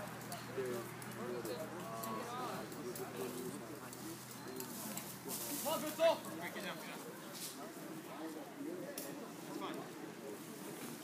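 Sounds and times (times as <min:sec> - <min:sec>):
distant people calling out: 0:00.0 - 0:08.7.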